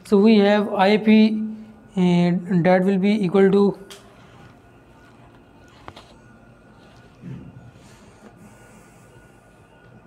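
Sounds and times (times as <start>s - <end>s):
faint high hum: 0.0s - 10.0s.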